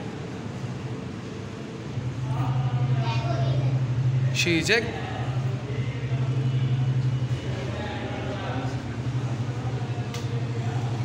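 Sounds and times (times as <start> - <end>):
steady low hum: 0.0 - 11.0
faint voices: 2.0 - 11.0.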